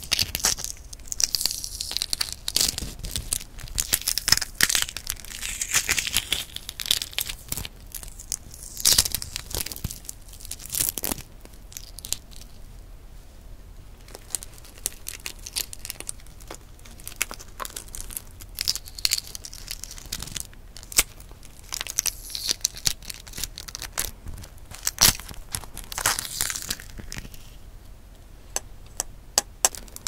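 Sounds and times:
eggshell cracking and peeling: 0:00.0 - 0:12.5, 0:14.1 - 0:27.4, 0:28.9 - 0:30.0.

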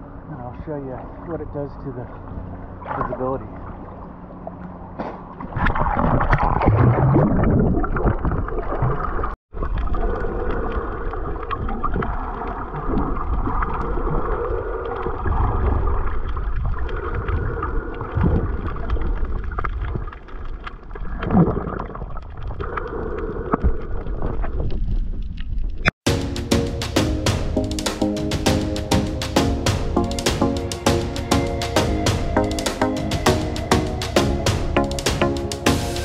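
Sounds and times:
underwater gurgling and rushing: 0:02.0 - 0:25.9.

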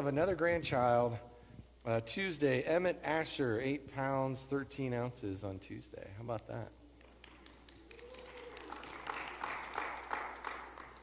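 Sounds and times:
crowd applauding: 0:07.0 - 0:11.0.

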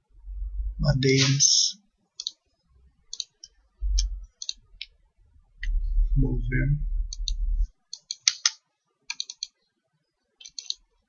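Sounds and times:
low rumble: 0:00.1 - 0:01.0, 0:03.8 - 0:04.3, 0:05.6 - 0:07.7
computer mouse clicking: 0:02.2 - 0:02.4, 0:03.1 - 0:04.9, 0:07.1 - 0:09.6, 0:10.4 - 0:10.8.

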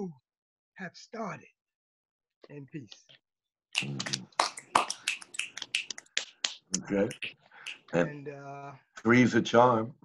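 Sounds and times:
people snapping fingers: 0:03.8 - 0:08.0.

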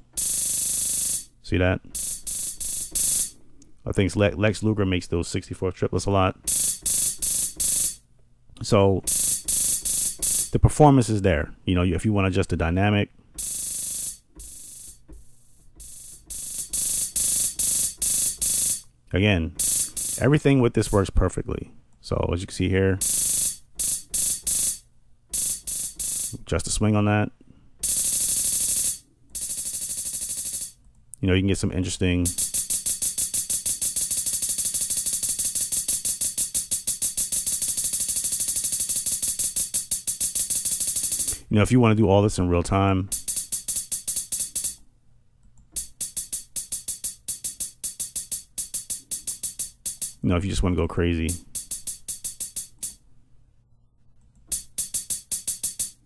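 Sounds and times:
hissing hi-hat rolls: 0:00.0 - 0:01.3, 0:02.0 - 0:03.4, 0:06.5 - 0:08.0, 0:09.1 - 0:10.6, 0:13.4 - 0:18.8, 0:19.6 - 0:20.4, 0:23.0 - 0:26.4, 0:27.8 - 0:30.8, 0:32.3 - 0:41.4, 0:43.1 - 0:44.8, 0:45.8 - 0:50.2, 0:51.3 - 0:53.0, 0:54.5 - 0:56.0.

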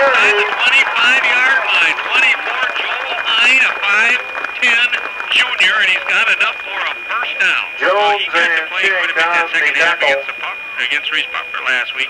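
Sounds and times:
commentators talking: 0:00.0 - 0:12.0
high-pitched whine: 0:00.0 - 0:12.0.

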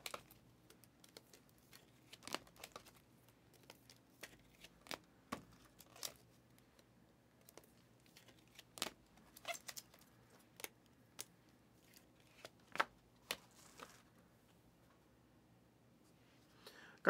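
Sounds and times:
cards clicking in plastic sleeve: 0:00.0 - 0:14.0.

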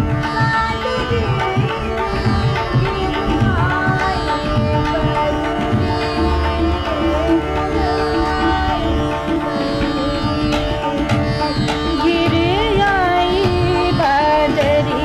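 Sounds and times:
harmonium: 0:00.0 - 0:15.0
tabla strokes: 0:00.0 - 0:15.0
tanpura drone: 0:00.0 - 0:15.0
person singing gliding melody: 0:00.6 - 0:10.3, 0:11.8 - 0:15.0.

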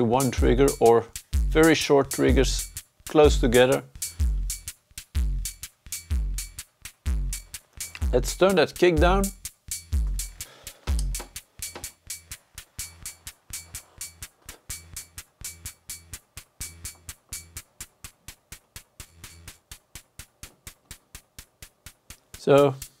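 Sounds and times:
fast hi-hat ticks: 0:00.0 - 0:23.0
kick drum: 0:00.4 - 0:01.6, 0:02.3 - 0:03.6, 0:04.2 - 0:08.4, 0:09.0 - 0:12.1.

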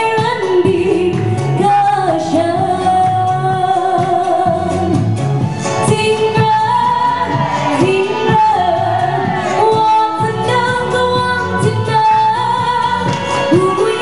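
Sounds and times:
amplified backing music with drums: 0:00.0 - 0:14.0
woman singing into microphone: 0:00.0 - 0:14.0.

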